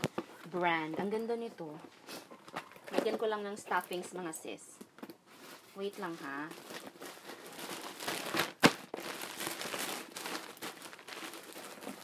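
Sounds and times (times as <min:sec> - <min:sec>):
packing stuffing crinkling: 0:05.2 - 0:12.0.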